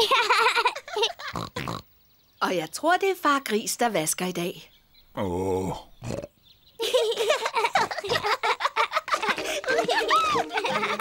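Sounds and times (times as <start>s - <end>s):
cartoon piglet voices laughing: 0.0s - 1.8s, 6.8s - 11.0s
pig snorts: 1.3s - 1.8s, 6.0s - 6.3s.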